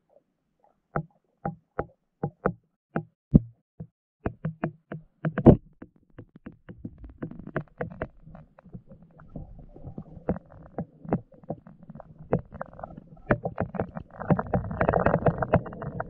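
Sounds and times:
camera knocking against rocks underwater: 0:01.0 - 0:09.0, 0:12.2 - 0:16.0.

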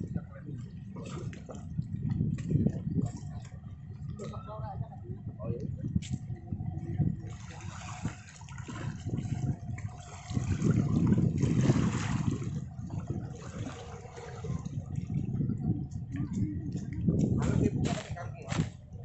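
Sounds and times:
water lapping against seawall: 0:00.0 - 0:19.0.

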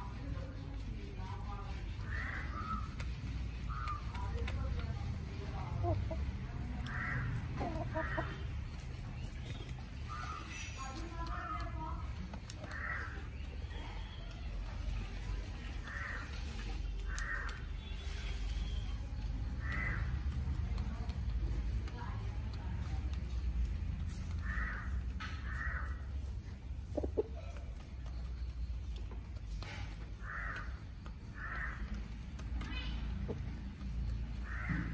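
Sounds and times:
chickens clucking: 0:01.6 - 0:17.6, 0:23.0 - 0:32.6
harsh cawing bird calls: 0:02.0 - 0:03.0, 0:03.7 - 0:04.3, 0:06.8 - 0:08.5, 0:10.0 - 0:11.7, 0:12.6 - 0:13.4, 0:15.8 - 0:17.9, 0:19.6 - 0:20.3, 0:24.4 - 0:26.1, 0:30.1 - 0:32.2, 0:34.3 - 0:34.9
crow caws: 0:06.9 - 0:07.3, 0:12.7 - 0:13.2, 0:17.1 - 0:17.6, 0:19.6 - 0:20.1, 0:24.4 - 0:26.0, 0:30.2 - 0:31.9, 0:34.4 - 0:34.9.

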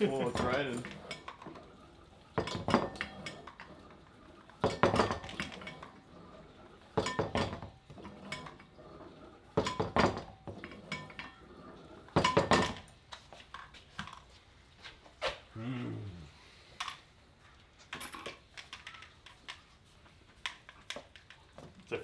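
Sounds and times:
metal clinking and clanking: 0:00.0 - 0:14.3, 0:17.8 - 0:19.7.

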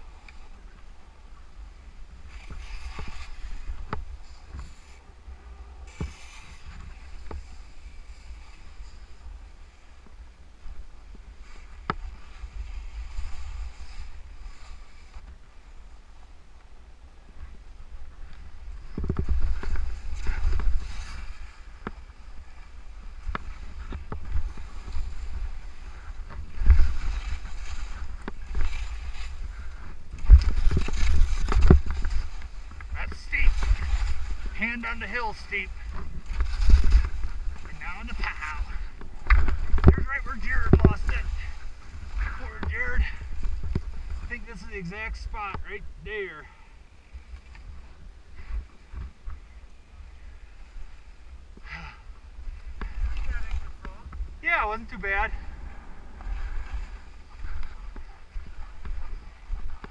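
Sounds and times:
skis scraping on snow: 0:01.3 - 0:16.0, 0:17.3 - 0:51.2, 0:51.8 - 0:59.9
skis hissing over snow: 0:02.2 - 0:05.1, 0:05.8 - 0:10.0, 0:11.4 - 0:15.2, 0:19.5 - 0:22.9
wind on microphone: 0:17.0 - 0:46.2
person speaking: 0:33.0 - 0:33.9, 0:34.5 - 0:35.9, 0:37.6 - 0:39.0, 0:39.9 - 0:41.6, 0:42.2 - 0:43.2, 0:44.3 - 0:46.5, 0:54.4 - 0:55.4.

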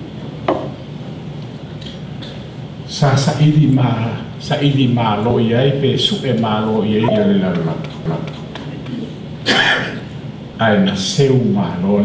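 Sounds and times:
man clearing his throat: 0:09.4 - 0:10.1.

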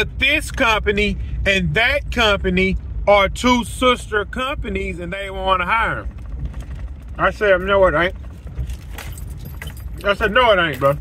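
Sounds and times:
car interior low rumble: 0:00.0 - 0:11.0
light clicks and jingling: 0:08.4 - 0:11.0.

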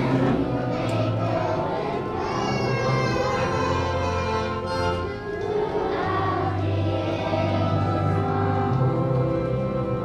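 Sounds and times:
children's choir singing: 0:00.0 - 0:10.0
musical accompaniment: 0:00.0 - 0:10.0.

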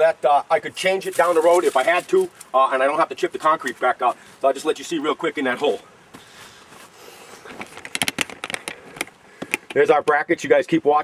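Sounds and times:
camera handling clicks and knocks: 0:07.5 - 0:09.8.

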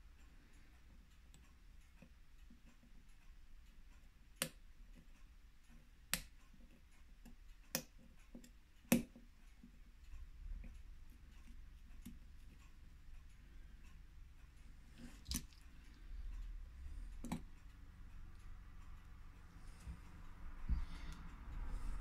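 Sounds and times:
tweezers clicking on watch: 0:00.6 - 0:20.4.

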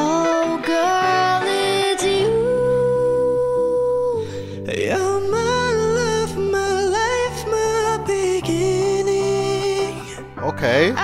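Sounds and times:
man and woman singing a duet: 0:00.0 - 0:11.0
soft musical accompaniment: 0:00.0 - 0:11.0.

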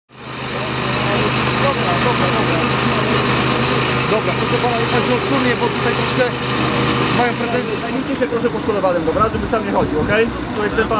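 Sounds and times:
small petrol engine running: 0:00.1 - 0:10.9
voices talking: 0:00.2 - 0:10.9.

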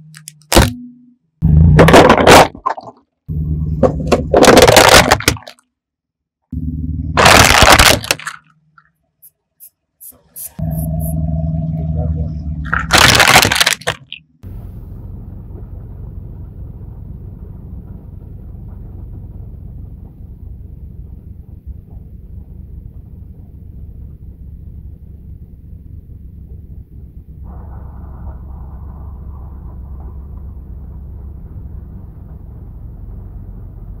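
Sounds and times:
low rumble inside car: 0:03.3 - 0:05.0, 0:06.5 - 0:07.6, 0:10.1 - 0:34.0
loud sudden crack: 0:07.2 - 0:08.2, 0:12.8 - 0:14.1.

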